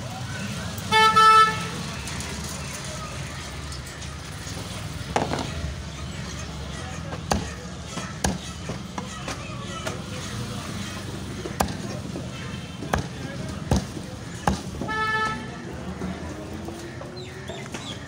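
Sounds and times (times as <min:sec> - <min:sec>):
low rumble of street noise: 0:00.0 - 0:18.0.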